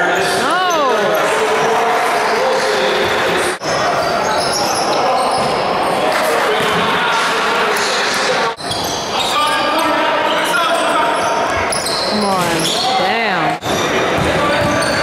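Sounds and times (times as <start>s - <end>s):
shoes squeaking: 10.7s - 13.2s.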